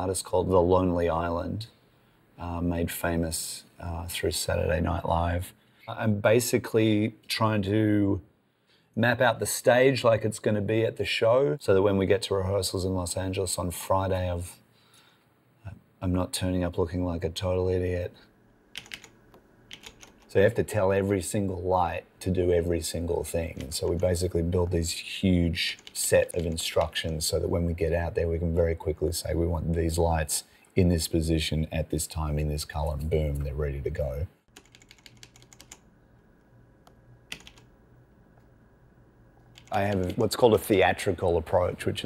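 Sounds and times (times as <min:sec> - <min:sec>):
faint low hum: 0:00.0 - 0:42.0
keypad keys clicking: 0:18.8 - 0:20.3, 0:34.5 - 0:35.8, 0:37.3 - 0:37.7, 0:39.5 - 0:40.2.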